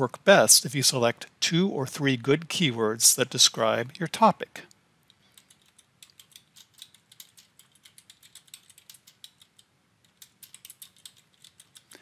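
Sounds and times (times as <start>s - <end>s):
typing on computer keyboard: 5.3s - 12.0s.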